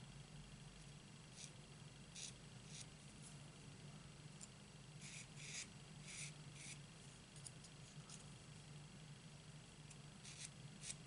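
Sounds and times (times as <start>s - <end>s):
low steady hum: 0.0s - 11.0s
marker nib rubbing on cardstock: 1.4s - 2.9s, 5.0s - 6.8s, 10.2s - 11.0s.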